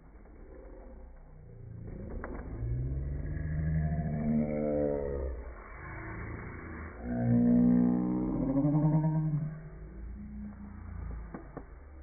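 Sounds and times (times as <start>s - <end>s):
deep slowed-down voice: 0.0s - 12.0s.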